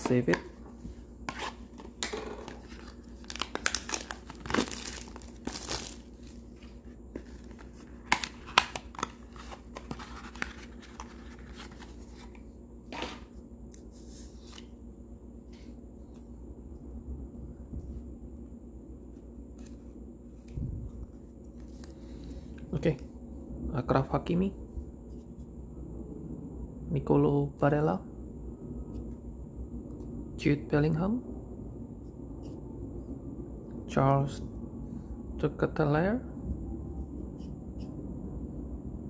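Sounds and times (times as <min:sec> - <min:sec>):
card pack wrapper tearing: 0:02.6 - 0:06.4.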